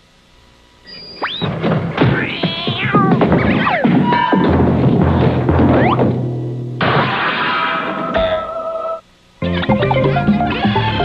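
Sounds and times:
cartoon music: 0:09.4 - 0:11.0.

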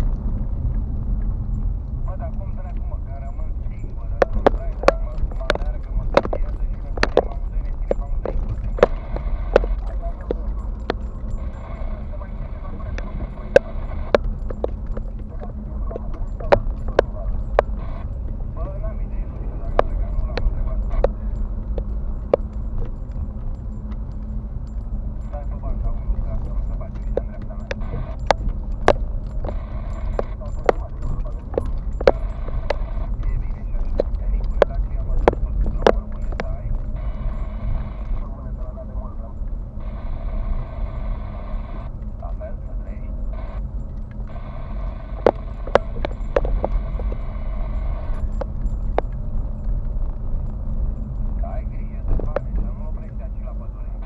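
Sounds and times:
engine and road rumble: 0:00.0 - 0:54.0.

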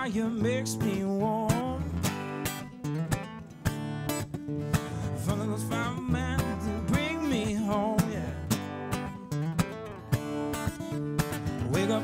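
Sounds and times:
acoustic guitar strumming: 0:00.0 - 0:12.0.

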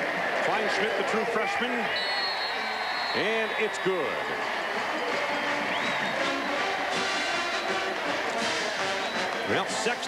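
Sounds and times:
stadium crowd cheering: 0:00.0 - 0:10.0
marching band brass: 0:04.5 - 0:10.0.

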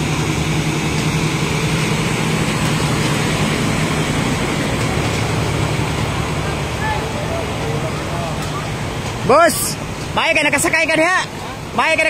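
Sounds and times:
diesel truck engine running: 0:00.0 - 0:12.0
water rushing and splashing: 0:00.0 - 0:12.0.

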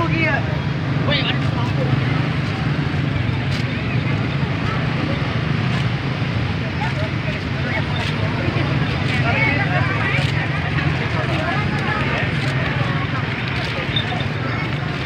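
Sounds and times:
crowd chatter: 0:00.0 - 0:15.0
motorbike engines humming: 0:00.0 - 0:15.0.

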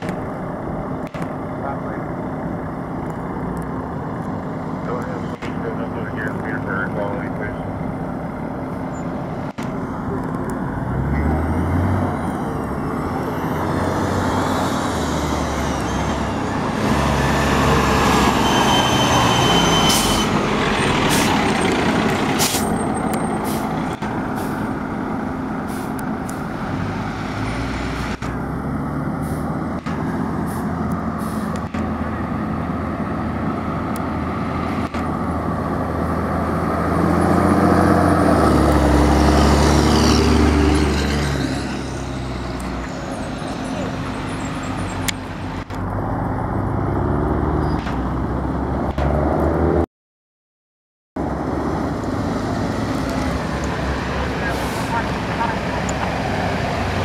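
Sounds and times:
fire truck diesel engine: 0:00.0 - 0:49.8, 0:51.2 - 0:57.0
air brake hisses: 0:30.5 - 0:31.6.

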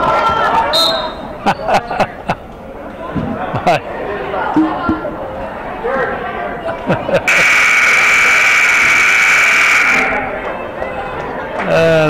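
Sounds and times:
crowd chatter: 0:00.0 - 0:12.0
scoreboard buzzer blast: 0:07.3 - 0:10.3.

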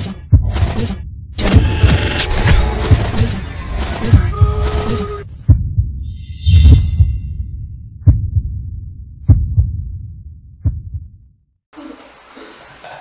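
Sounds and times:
deep bass booms: 0:05.4 - 0:06.1, 0:06.7 - 0:11.2.

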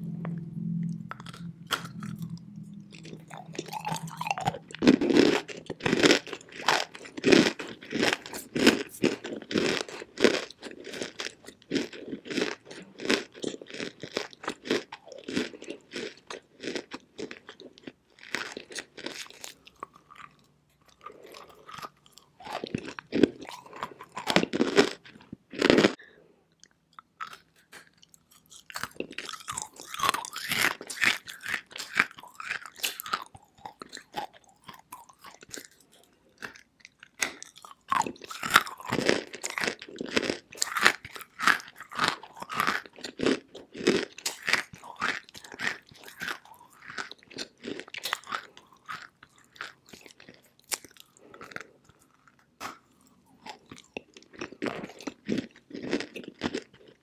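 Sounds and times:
clay being chewed with crunches: 0:00.1 - 0:57.0.

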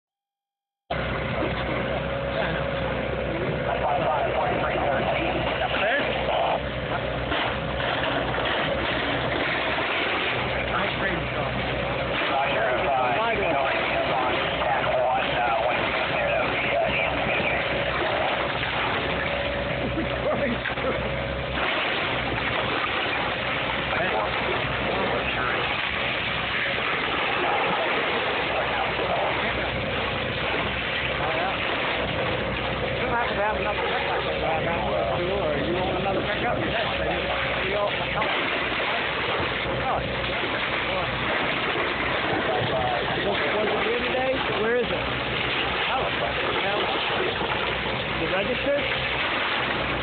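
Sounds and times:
diesel engine running: 0:00.9 - 0:50.0
people talking: 0:01.2 - 0:07.4, 0:10.4 - 0:21.2, 0:23.7 - 0:49.2.

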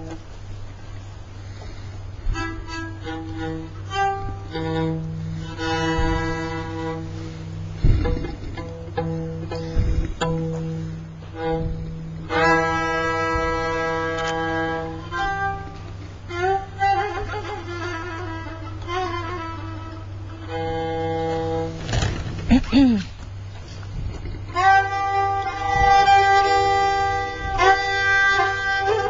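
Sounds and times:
bowed spike fiddle: 0:00.0 - 0:29.0.

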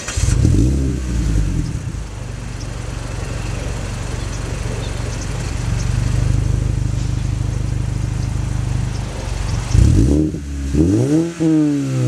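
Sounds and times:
car engine idling and revving: 0:00.0 - 0:12.0.

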